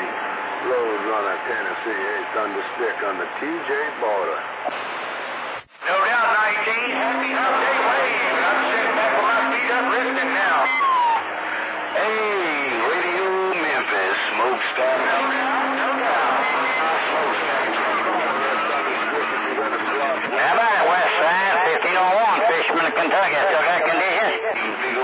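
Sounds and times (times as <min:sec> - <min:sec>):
distant radio voices: 0:00.0 - 0:25.0
radio noise: 0:00.0 - 0:25.0.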